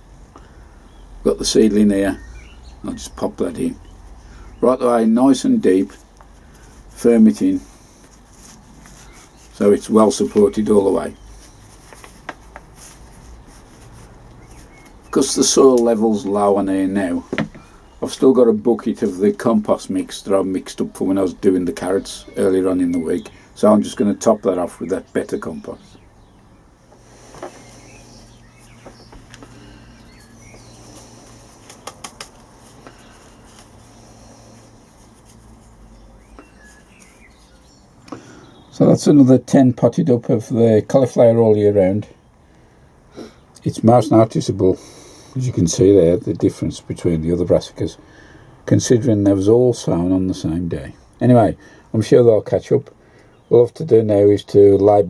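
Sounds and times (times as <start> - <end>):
faint bird chirps: 2.0 - 4.7, 13.2 - 15.4, 24.2 - 38.8
compost rustling: 3.6 - 18.0, 26.9 - 38.5.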